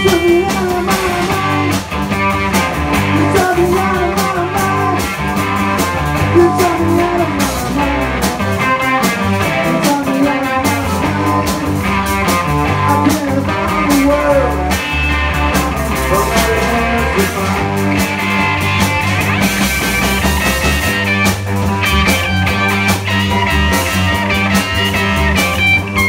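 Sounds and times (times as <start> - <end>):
blues-rock band playing: 0.0 - 26.0
electric guitar bent notes: 0.0 - 26.0.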